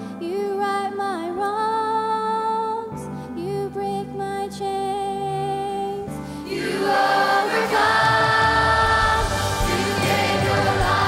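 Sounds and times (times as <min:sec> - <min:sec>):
girl singing into a microphone: 0:00.0 - 0:06.2
children's choir singing: 0:06.5 - 0:11.0
band playing: 0:06.7 - 0:11.0.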